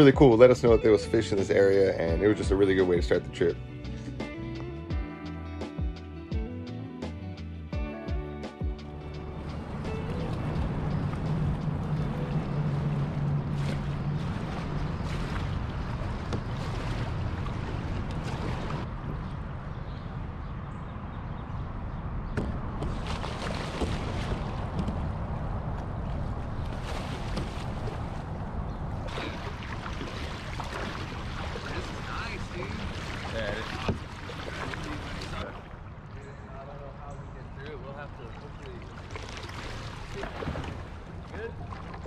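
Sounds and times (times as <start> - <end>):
water rushing: 9.1 - 19.5, 22.8 - 42.0
knocks and splashes: 9.3 - 19.5, 22.4 - 36.1, 37.7 - 42.0
wind on microphone: 9.5 - 35.5.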